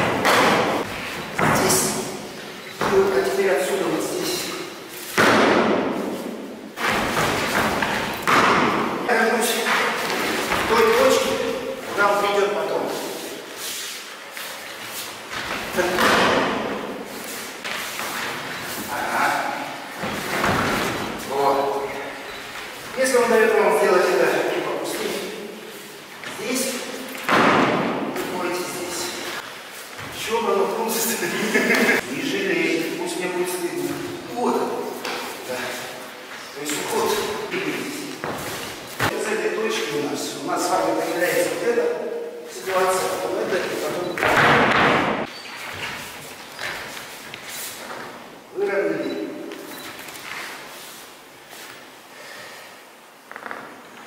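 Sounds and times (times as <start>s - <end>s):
uniform rustling and sliding on mat: 9.6s - 15.9s, 34.8s - 39.2s, 45.5s - 48.2s, 49.5s - 51.9s.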